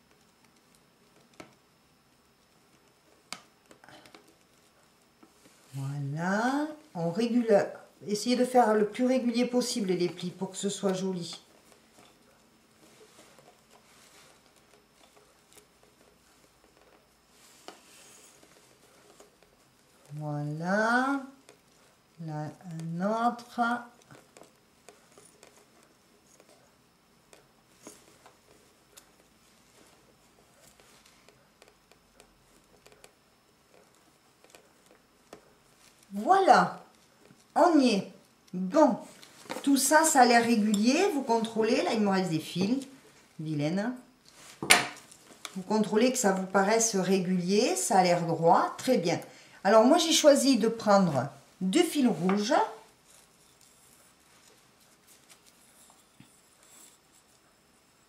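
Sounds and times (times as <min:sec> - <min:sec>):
fabric rustling: 0:08.6 - 0:20.2, 0:44.2 - 0:47.8, 0:50.4 - 0:58.0.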